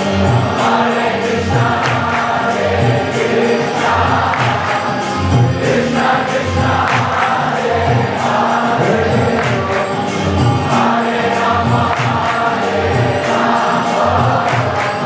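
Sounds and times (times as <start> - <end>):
group singing a chant: 0.0 - 15.0
drum beat: 0.4 - 15.0.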